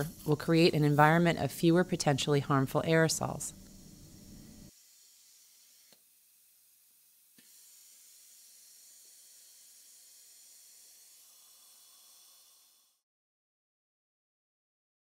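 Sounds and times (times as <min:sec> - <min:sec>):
faint dental suction hiss: 0:02.9 - 0:04.7, 0:07.3 - 0:13.0.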